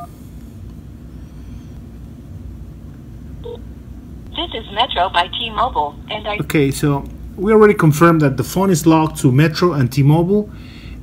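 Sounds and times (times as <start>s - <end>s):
steady low rumble: 4.2s - 7.6s.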